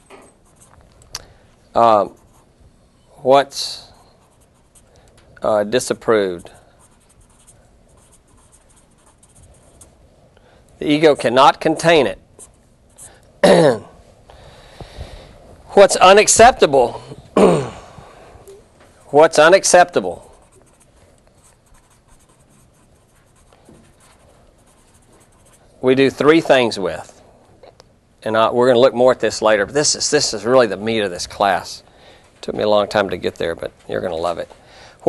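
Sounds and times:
pen scratching while writing: 6.4s - 9.9s, 20.5s - 25.6s.

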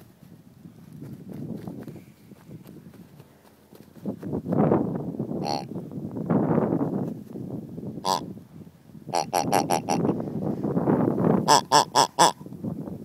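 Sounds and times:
dog toy grunting: 5.4s - 5.7s, 8.0s - 8.2s, 9.1s - 10.1s, 11.4s - 12.4s.

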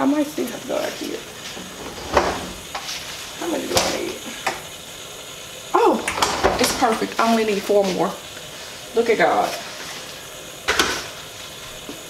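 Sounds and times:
woman talking: 0.0s - 1.3s, 3.4s - 4.4s, 5.7s - 8.2s, 8.9s - 9.6s.

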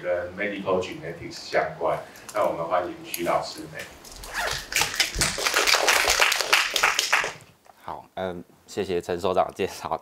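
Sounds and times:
audience applauding: 4.3s - 7.4s.

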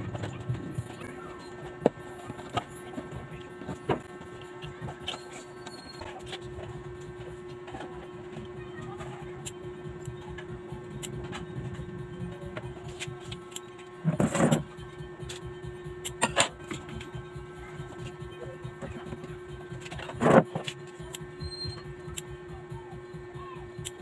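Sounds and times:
steady hum: 0.0s - 24.0s.

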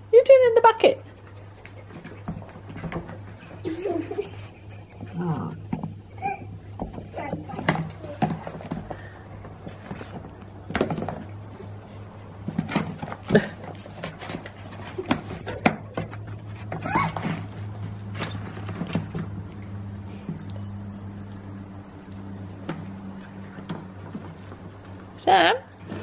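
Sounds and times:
steady low hum: 0.0s - 26.0s
knocks and clatters in bucket: 5.6s - 19.5s.

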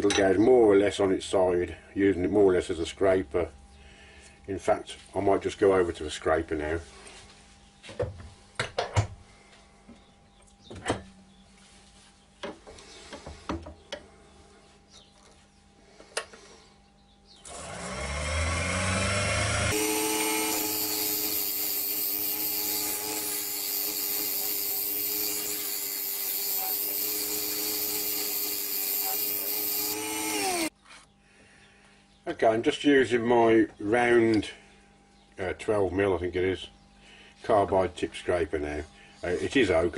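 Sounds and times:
wood lathe motor humming: 17.4s - 30.7s
scraper shaving wood: 18.6s - 30.7s.

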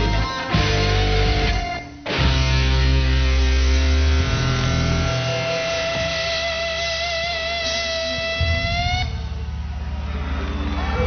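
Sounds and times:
high guitar note: 0.0s - 9.6s.

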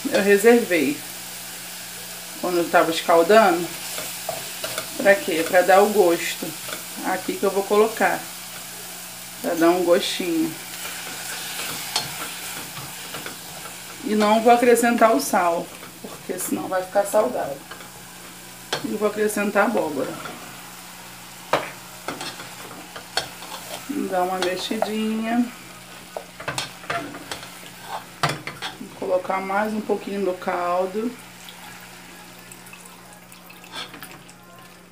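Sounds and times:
food sizzling in a pot: 0.0s - 34.9s
spatula scraping pot: 3.2s - 7.9s, 10.0s - 20.6s, 21.5s - 29.2s, 33.6s - 34.2s
spatula scraping metal pot: 21.5s - 25.0s, 25.7s - 28.9s, 33.6s - 34.1s
water pouring: 32.4s - 34.4s.

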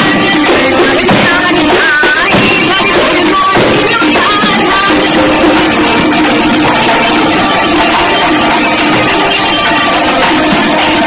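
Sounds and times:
folk ensemble instrumental music: 0.0s - 11.0s
steady held note: 0.7s - 11.0s.

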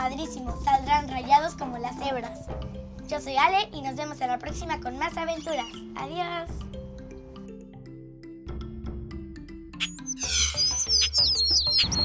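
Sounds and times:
background music with low beat: 4.5s - 12.0s
high falling bird chirps: 5.3s - 5.9s, 9.8s - 12.0s.

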